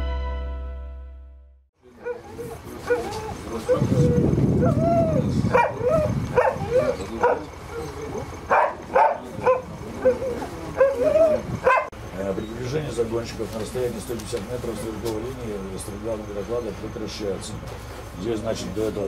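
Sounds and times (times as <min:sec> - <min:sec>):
dog yelping and whining: 0:02.0 - 0:11.9.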